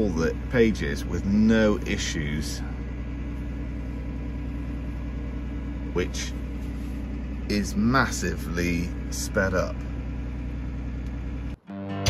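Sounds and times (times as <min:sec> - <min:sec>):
tractor diesel engine idling: 0:00.0 - 0:11.6.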